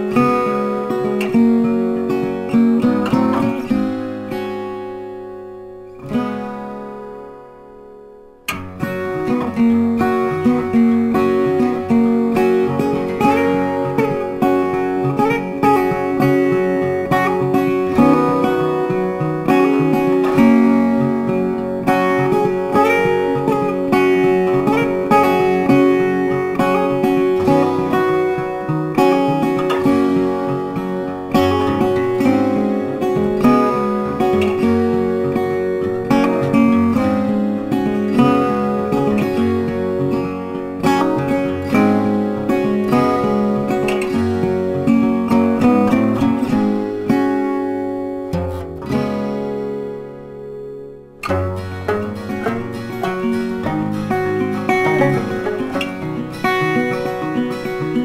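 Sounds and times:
acoustic guitar music: 0.0 - 58.0.

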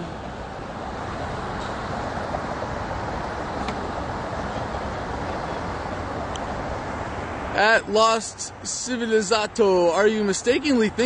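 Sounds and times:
highway traffic passing: 0.0 - 11.0.

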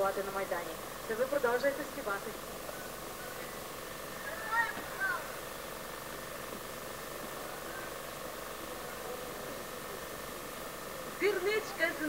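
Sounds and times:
faint distant voices: 0.0 - 12.0
faint steady hum: 0.0 - 12.0.

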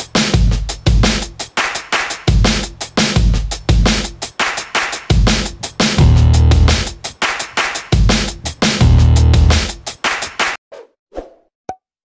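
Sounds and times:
electronic intro music: 6.0 - 6.8.

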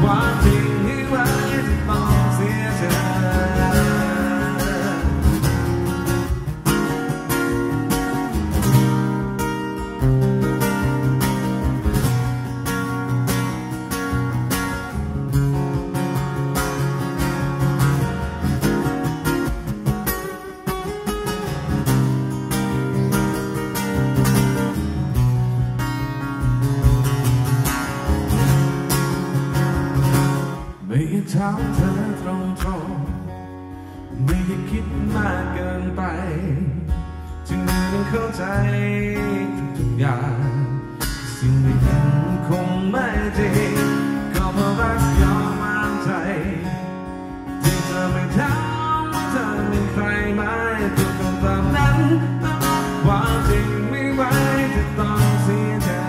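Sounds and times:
acoustic guitar strummed in chords: 0.0 - 56.0.

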